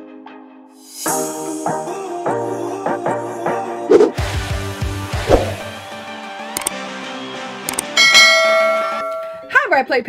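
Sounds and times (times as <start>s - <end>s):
upbeat intro music: 0.8s - 9.4s
click sound effects: 6.6s - 6.8s, 7.7s - 8.0s
bright bell chime: 8.0s - 9.5s.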